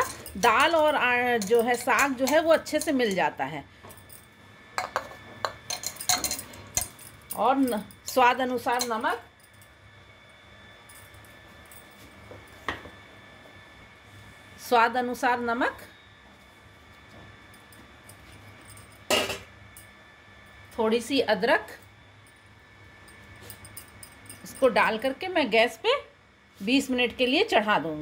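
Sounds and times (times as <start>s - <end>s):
bangles clinking on metal: 0.0s - 3.2s, 3.9s - 9.7s, 23.0s - 24.8s.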